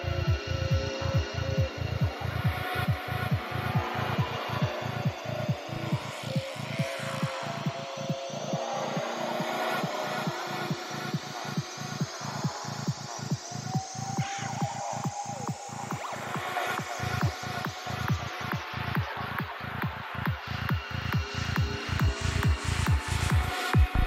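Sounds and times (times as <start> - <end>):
pulsing bass line: 23.8 - 24.0.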